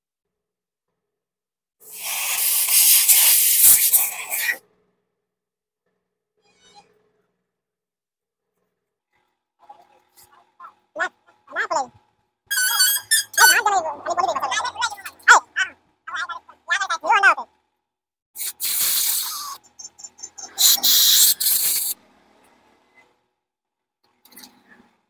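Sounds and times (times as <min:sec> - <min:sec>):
compressed air blow gun hissing: 0:01.9 - 0:04.6, 0:18.4 - 0:19.6, 0:20.6 - 0:22.0.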